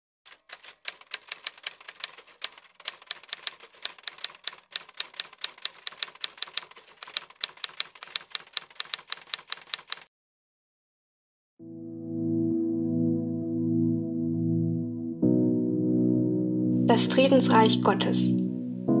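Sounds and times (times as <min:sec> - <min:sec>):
typewriter key clacks: 0:00.3 - 0:10.1.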